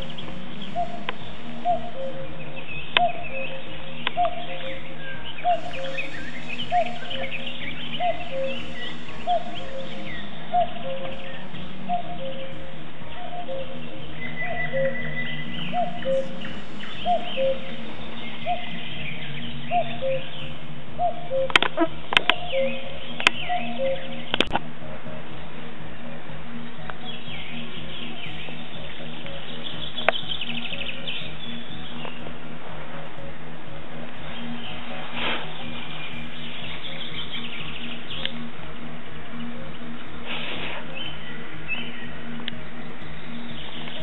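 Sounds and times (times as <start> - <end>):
birds chirping: 0.0 - 44.0
low drone: 0.0 - 44.0.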